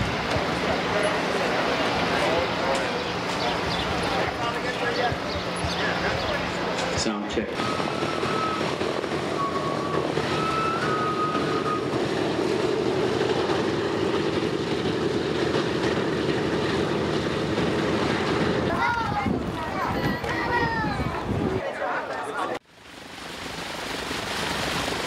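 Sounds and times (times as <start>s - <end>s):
piston aircraft engines droning: 0.0s - 21.6s.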